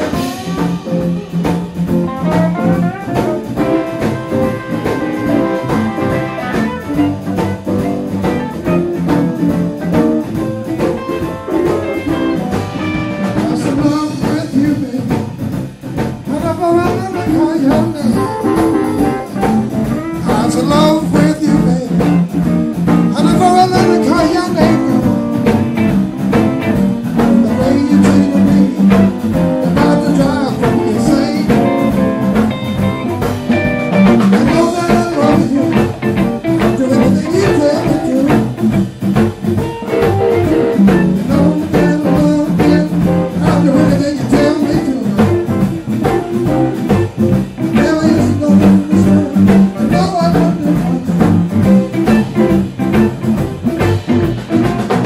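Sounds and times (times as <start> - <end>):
bending electric guitar lead: 0.0 - 55.0
blues band playing: 0.0 - 55.0
steady drum beat: 0.0 - 55.0.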